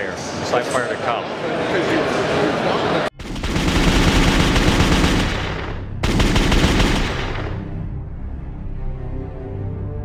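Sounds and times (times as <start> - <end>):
rapid automatic gunfire: 3.2 - 7.7
music: 5.9 - 10.0.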